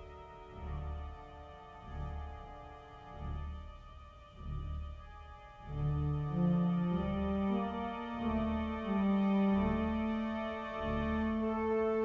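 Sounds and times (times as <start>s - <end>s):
church pipe organ playing: 0.0s - 12.0s.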